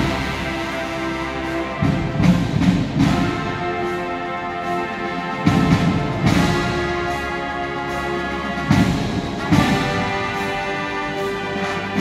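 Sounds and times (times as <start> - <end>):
marching band playing: 0.0 - 12.0
loud drum strikes: 1.8 - 3.8.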